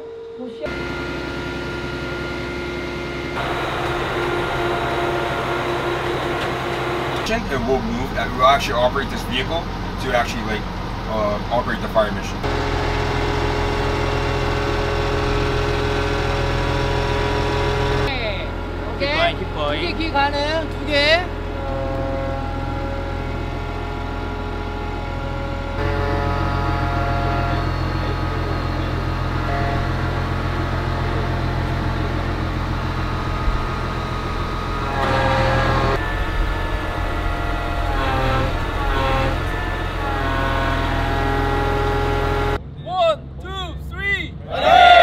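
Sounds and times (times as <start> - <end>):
vehicle engine droning: 0.0 - 45.0
group of voices shouting: 44.4 - 45.0.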